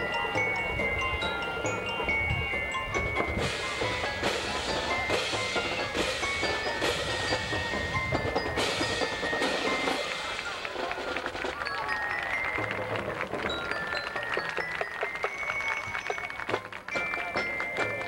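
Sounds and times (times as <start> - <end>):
marching band playing: 0.0 - 18.0
ringing bell-like tones: 0.0 - 18.0.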